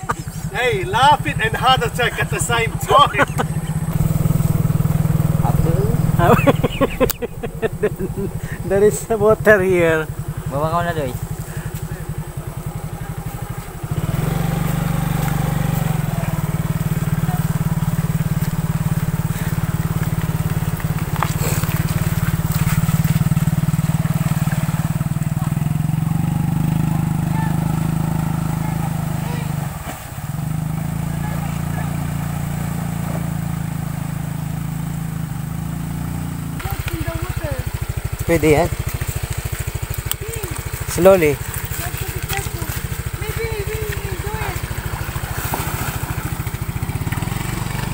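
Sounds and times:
motor scooter engine running: 0.0 - 47.9.

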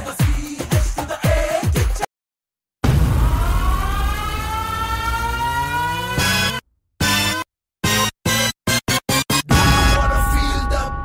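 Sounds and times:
rising siren-like tone: 3.0 - 6.6.

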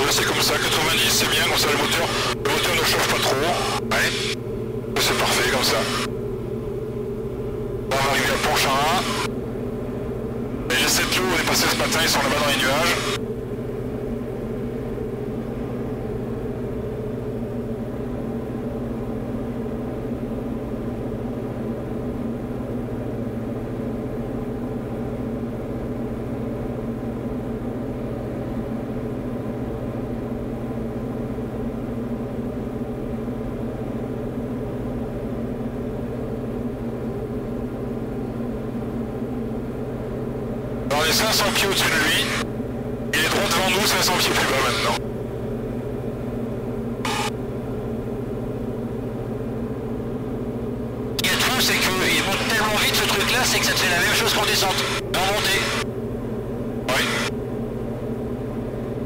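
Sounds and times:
propeller plane engine droning: 0.0 - 59.0.

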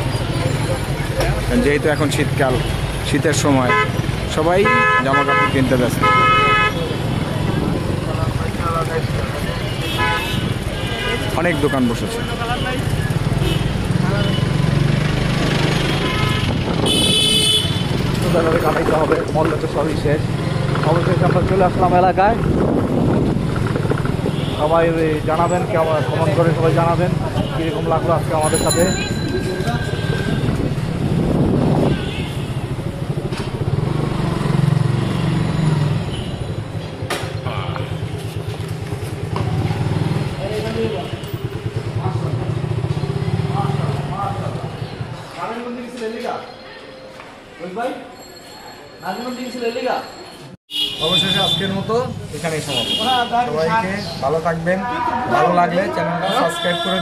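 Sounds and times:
street traffic rumble: 0.0 - 57.0
vehicle horn blast: 4.6 - 6.9, 9.8 - 11.7, 16.0 - 17.9, 50.7 - 51.8, 56.2 - 57.0
crowd chatter: 6.2 - 14.4.

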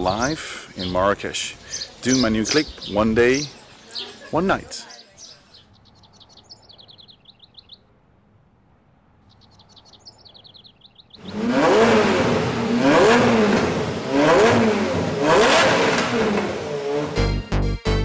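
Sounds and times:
small birds chirping: 0.0 - 8.0, 9.0 - 17.1
car engine revving: 11.2 - 17.3.

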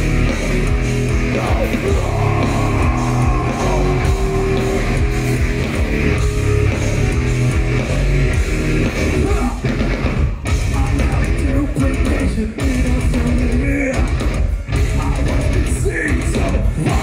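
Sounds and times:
live metal band: 0.0 - 17.0.

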